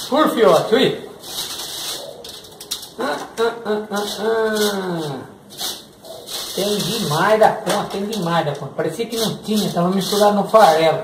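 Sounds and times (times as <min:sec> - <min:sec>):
person's wordless falling voice: 0:03.0 - 0:05.4
fingers rustling through dry bran: 0:04.0 - 0:08.4, 0:09.1 - 0:10.8.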